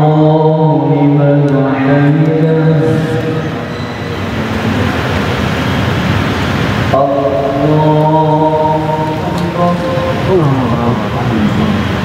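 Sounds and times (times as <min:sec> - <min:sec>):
person chanting recitation: 0:00.0 - 0:03.6, 0:06.9 - 0:11.9
congregation answering in unison: 0:00.0 - 0:03.7, 0:06.9 - 0:12.0.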